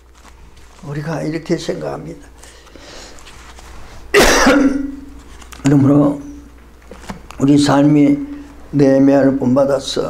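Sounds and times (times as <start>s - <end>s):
man coughing: 4.1s - 5.0s.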